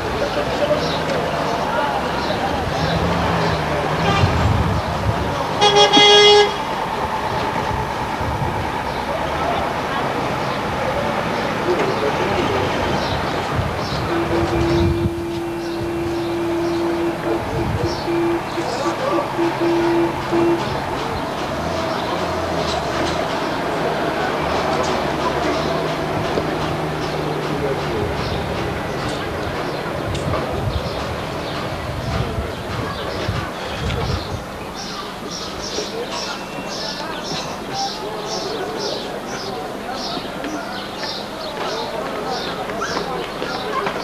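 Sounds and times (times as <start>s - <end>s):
street traffic noise: 0.0s - 44.0s
vehicle horn toot: 4.0s - 4.5s, 5.6s - 6.7s, 14.0s - 20.9s.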